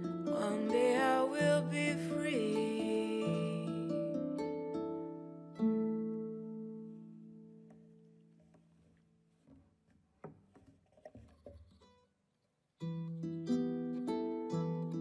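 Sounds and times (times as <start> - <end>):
kora plucking a melody: 0.0 - 8.4, 12.8 - 15.0
faint knocks: 9.4 - 11.9.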